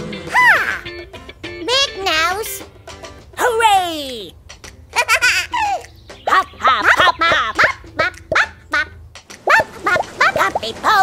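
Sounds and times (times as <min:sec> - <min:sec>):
cartoon character laughing: 0:00.3 - 0:00.9, 0:04.9 - 0:10.6.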